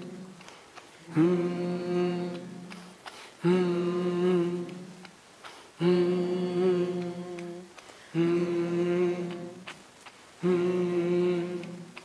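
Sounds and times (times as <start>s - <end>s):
breath: 3.0s - 3.4s, 5.4s - 5.8s, 7.8s - 8.2s.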